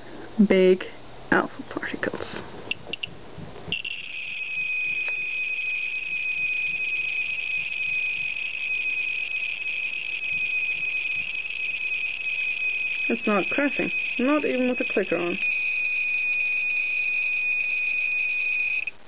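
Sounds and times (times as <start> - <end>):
geiger counter high-pitched tone: 3.7 - 19.0.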